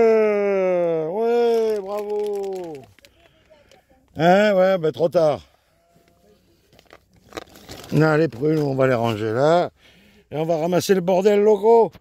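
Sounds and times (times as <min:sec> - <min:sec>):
plastic bag rustling and crinkling: 0:01.2 - 0:03.9, 0:05.9 - 0:09.6.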